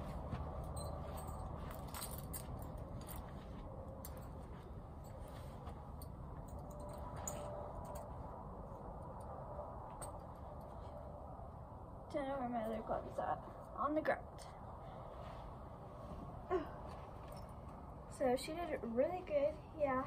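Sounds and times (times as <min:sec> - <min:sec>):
steady low rumble: 0:00.0 - 0:20.0
horse tack clinking: 0:00.2 - 0:08.2.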